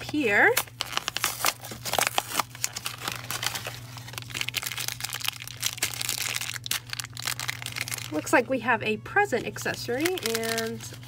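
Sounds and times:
foil bag crinkling and tearing: 0:00.0 - 0:08.4, 0:09.6 - 0:11.0.

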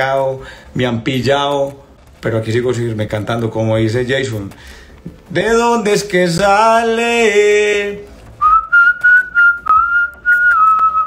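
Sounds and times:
man whistling: 0:08.4 - 0:11.0.

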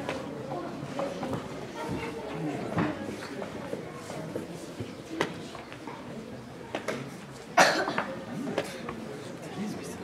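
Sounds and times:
loud cough: 0:07.6 - 0:08.1.

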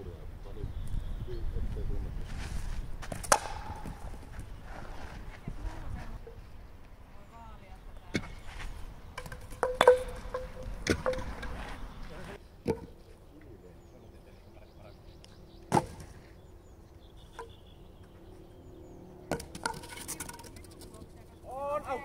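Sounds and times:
wooden bats clacking on asphalt: 0:03.0 - 0:04.6, 0:08.1 - 0:13.4, 0:17.2 - 0:18.2, 0:19.3 - 0:21.5.

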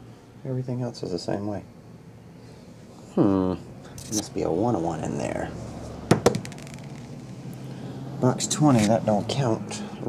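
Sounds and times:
die clattering on tabletop: 0:06.1 - 0:07.0.

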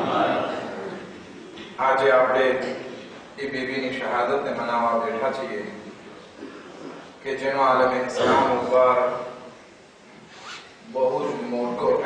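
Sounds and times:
man speaking: 0:07.2 - 0:09.5, 0:10.9 - 0:12.0.

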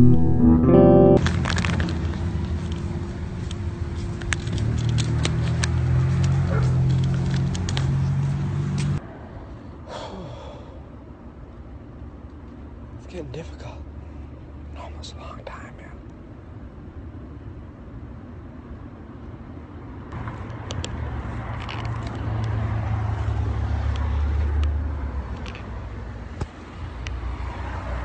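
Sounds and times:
vehicle engine rumble passing: 0:01.2 - 0:09.6, 0:20.2 - 0:28.0.

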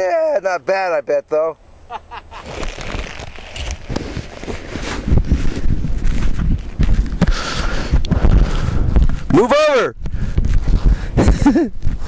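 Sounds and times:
wind buffeting microphone: 0:03.6 - 0:12.0.

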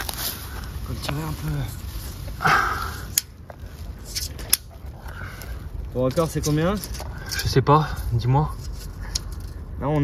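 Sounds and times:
rustling in grass: 0:00.0 - 0:07.0.

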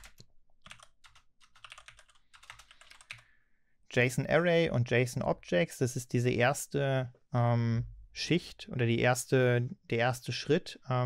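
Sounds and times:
typing on a computer keyboard: 0:00.0 - 0:03.2.

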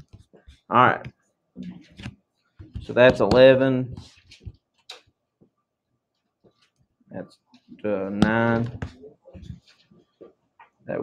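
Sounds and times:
stylus tapping a screen: 0:08.2 - 0:09.6.

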